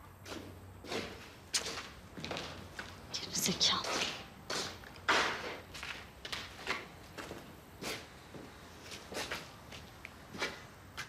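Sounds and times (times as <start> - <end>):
footsteps on gritty floor: 0.2 - 3.0, 3.7 - 11.0.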